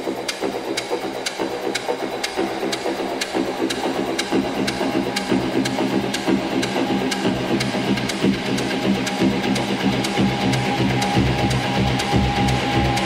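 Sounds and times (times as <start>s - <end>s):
techno beat: 0.0s - 13.0s
humming bass: 0.5s - 13.0s.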